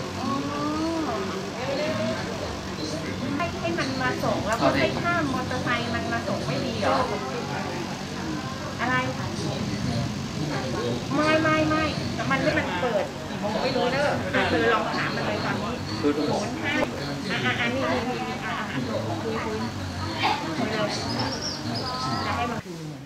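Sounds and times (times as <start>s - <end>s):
adults talking: 0.0s - 23.0s.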